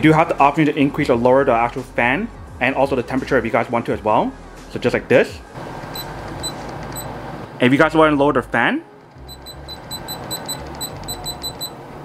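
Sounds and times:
short high beeps: 6.0 - 7.1, 9.2 - 11.8.

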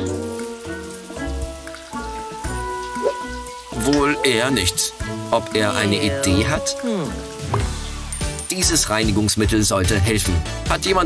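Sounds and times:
background music with steady beat: 0.0 - 11.0
shower water spraying: 0.0 - 11.0.

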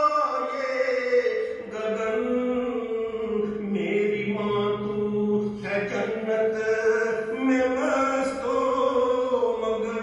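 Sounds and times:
man singing in chanting style: 0.0 - 10.0.

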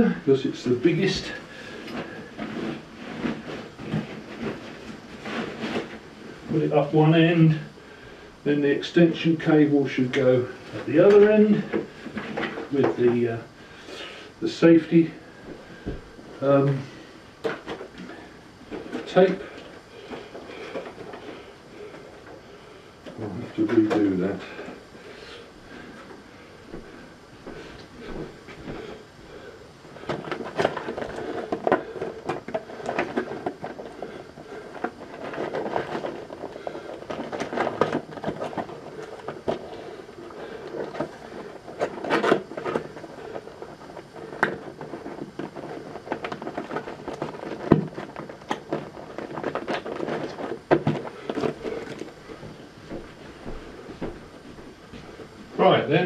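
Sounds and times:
equipment rustling clicking and knocking: 1.0 - 6.6, 10.6 - 13.2, 17.4 - 25.1, 25.7 - 55.5.

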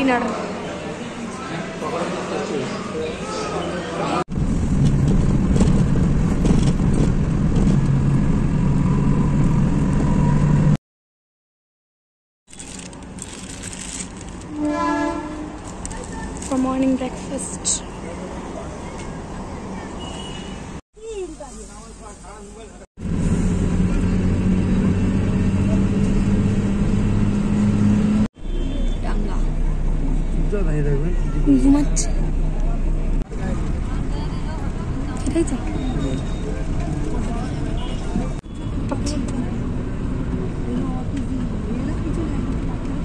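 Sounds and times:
bus engine rumble: 0.0 - 10.8, 12.5 - 43.0
road noise: 0.0 - 10.8, 12.5 - 43.0
constant background noise: 12.5 - 22.8, 28.5 - 43.0
vehicle horn blare: 14.5 - 15.6, 20.0 - 20.7
people talking: 15.8 - 20.2, 28.8 - 39.7, 40.3 - 43.0.

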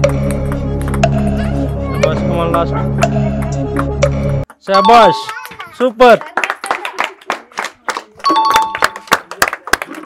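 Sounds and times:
people clapping: 4.5 - 10.0
two-note ding-dong chime: 4.8 - 5.3.

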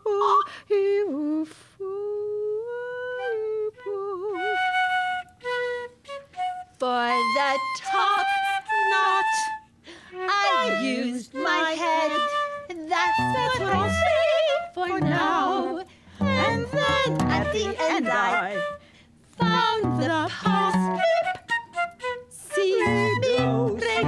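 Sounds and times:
flute: 2.6 - 24.0
wordless wavering vocalizing: 12.9 - 18.8, 22.6 - 24.0.

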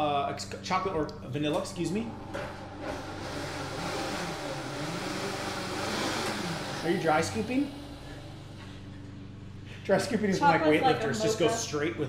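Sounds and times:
blender running: 2.7 - 8.4.

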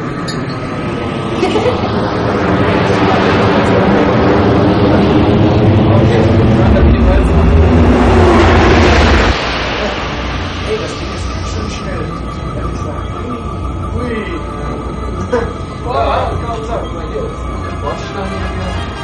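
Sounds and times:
deep rumble: 0.0 - 19.0
spaceship engine drone: 0.0 - 19.0.

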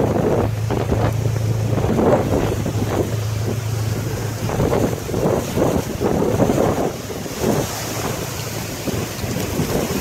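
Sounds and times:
steady low hum: 0.0 - 8.9
wind buffeting microphone: 0.0 - 10.0.

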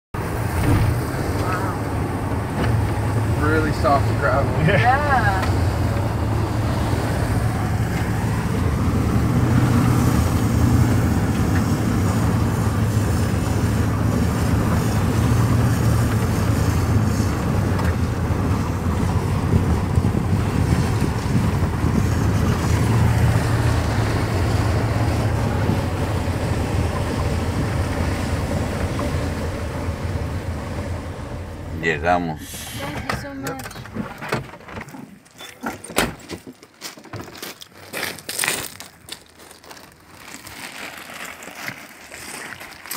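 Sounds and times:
vehicle engine and road rumble: 0.1 - 42.9.

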